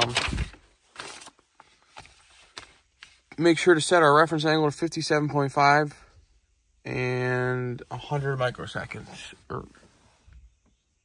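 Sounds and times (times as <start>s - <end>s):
paper rustling: 0.0s - 3.2s.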